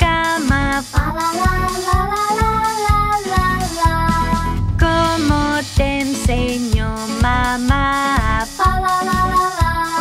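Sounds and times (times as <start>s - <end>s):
backing track with steady beat: 0.0s - 10.0s
child singing: 0.0s - 10.0s.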